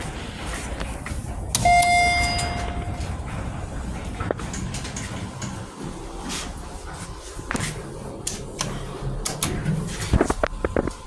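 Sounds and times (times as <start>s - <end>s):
elevator chime ding: 1.6s - 3.2s.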